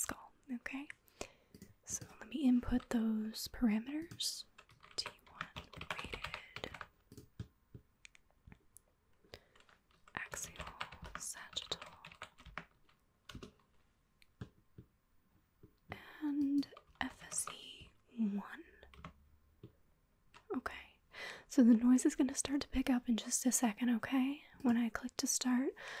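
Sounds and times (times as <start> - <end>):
typing on laptop keyboard: 3.8 - 7.6, 9.4 - 13.6, 18.8 - 19.2
soft breathy voice: 15.8 - 19.0.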